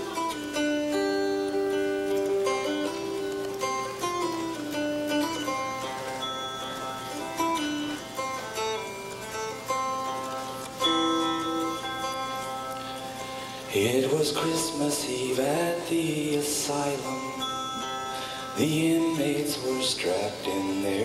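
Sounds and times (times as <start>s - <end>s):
plucked dulcimer melody: 0.0s - 21.0s.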